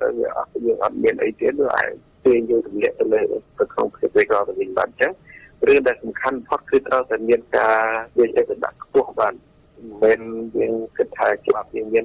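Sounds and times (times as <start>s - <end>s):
radio news voice speaking: 0.0s - 12.0s.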